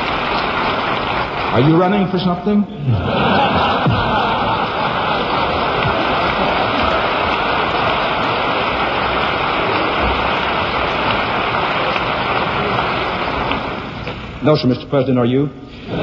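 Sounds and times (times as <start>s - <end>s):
large audience applauding: 0.0s - 14.2s.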